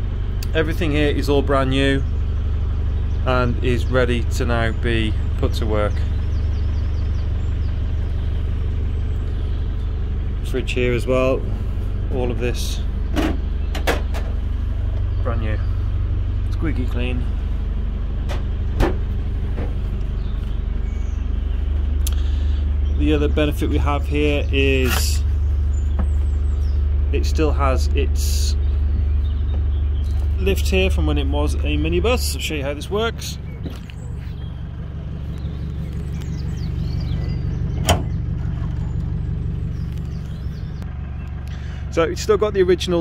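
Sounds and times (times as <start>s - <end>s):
engine idling: 0.0s - 43.0s.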